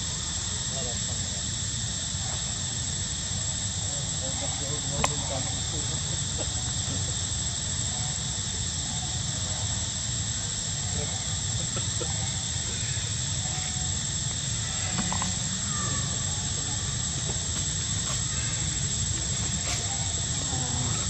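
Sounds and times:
faint murmuring voices: 0.0 - 21.0
high-pitched insect drone: 0.0 - 21.0.

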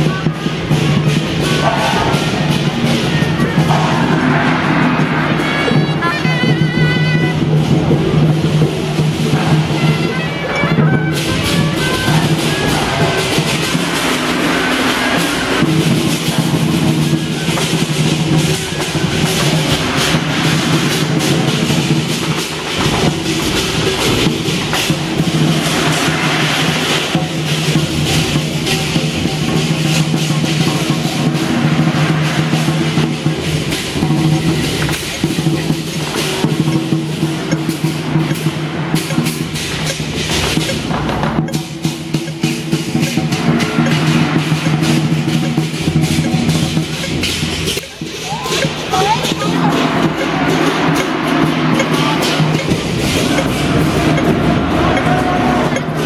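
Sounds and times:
drums beating rapidly: 0.0 - 56.0
metallic cymbal clashing: 0.0 - 56.0.

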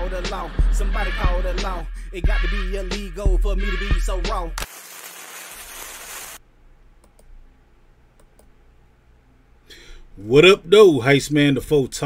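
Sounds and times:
faint clicks: 7.0 - 7.4, 8.2 - 8.5.

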